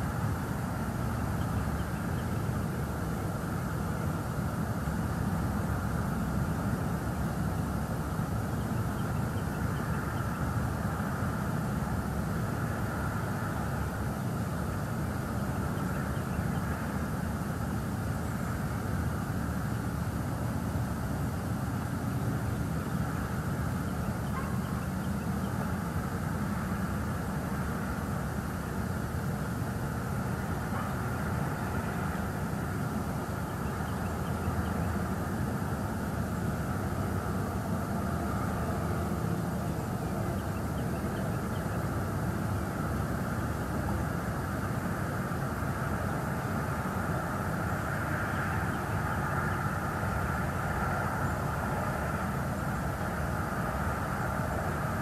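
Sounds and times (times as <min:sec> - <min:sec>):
constant hiss: 0:00.0 - 0:55.0
low outdoor rumble: 0:00.0 - 0:55.0.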